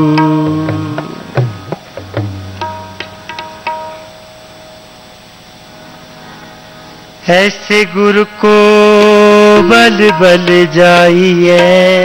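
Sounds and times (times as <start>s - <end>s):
harmonium drone: 0.0s - 12.0s
low hiss: 0.0s - 12.0s.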